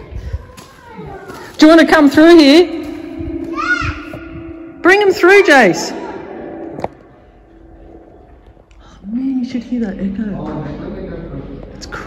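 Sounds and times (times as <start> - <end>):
low tunnel rumble: 0.0 - 12.0.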